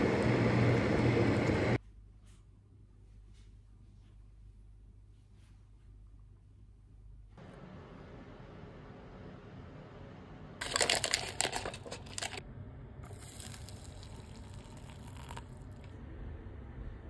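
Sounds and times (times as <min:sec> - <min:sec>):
packaging crinkling: 0:10.6 - 0:12.4, 0:13.1 - 0:15.5
water pouring into paper cup: 0:13.1 - 0:15.9.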